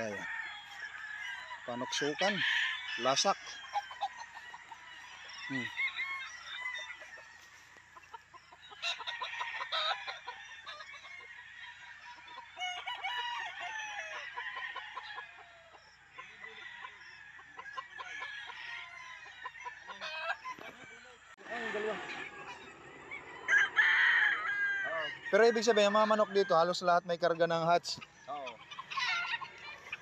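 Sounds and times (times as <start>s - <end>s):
roosters crowing: 0.0s - 30.0s.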